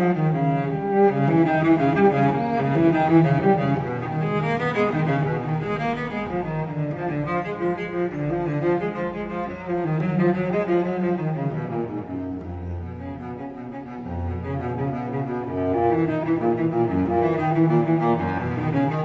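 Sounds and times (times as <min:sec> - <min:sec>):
classical string ensemble: 0:00.0 - 0:19.0.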